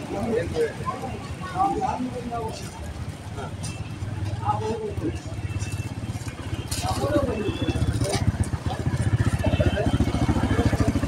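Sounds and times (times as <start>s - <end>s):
people talking: 0.0s - 5.9s, 6.5s - 11.0s
engine idling: 3.8s - 11.0s.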